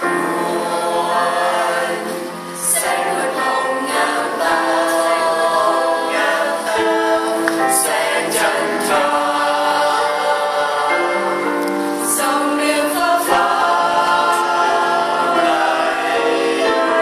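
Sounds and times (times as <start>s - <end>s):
choir singing in harmony: 0.0s - 17.0s.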